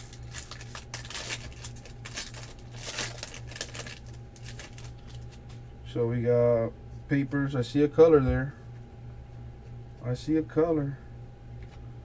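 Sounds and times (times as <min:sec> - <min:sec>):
wrapper tearing and crinkling: 0:00.0 - 0:05.5
steady low hum: 0:00.0 - 0:12.0.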